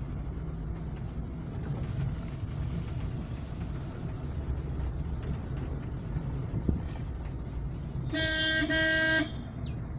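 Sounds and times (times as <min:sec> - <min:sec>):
car horn honks: 0:08.1 - 0:09.4.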